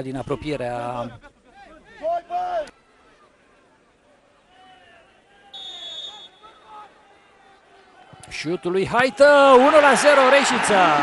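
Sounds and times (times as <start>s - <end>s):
referee's whistle blast: 5.6s - 6.7s.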